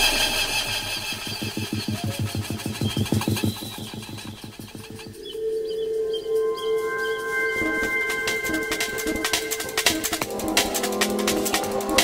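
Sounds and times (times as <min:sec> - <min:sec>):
pulsing low synth: 0:00.0 - 0:12.0.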